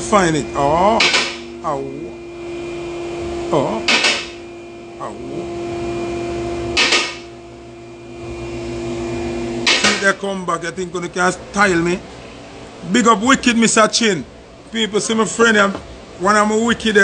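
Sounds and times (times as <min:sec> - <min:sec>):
electrical hum: 0:00.0 - 0:17.0.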